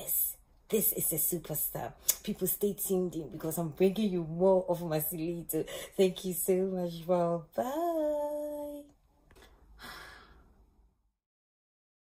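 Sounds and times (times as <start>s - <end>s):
woman sighing softly: 9.4s - 10.6s.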